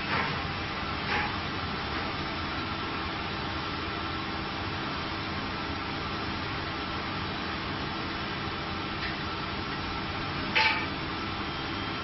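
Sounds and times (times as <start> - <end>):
machine hum and hiss: 0.0 - 12.0.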